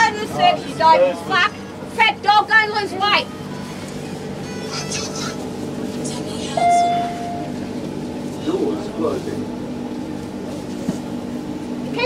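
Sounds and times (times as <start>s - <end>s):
train carriage hum: 0.0s - 12.0s.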